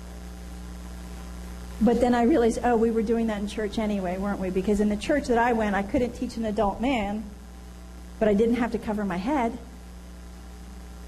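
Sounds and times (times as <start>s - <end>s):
low electrical hum: 0.0s - 11.0s
woman speaking: 1.8s - 7.3s, 8.2s - 9.7s.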